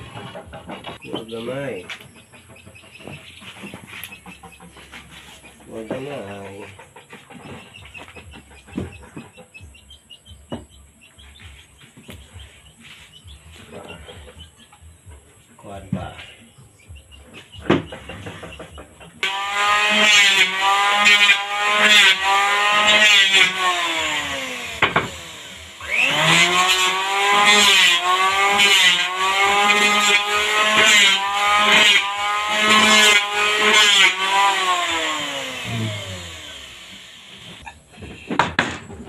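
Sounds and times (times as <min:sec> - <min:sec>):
electric hand planer whining: 0:19.2 - 0:37.7.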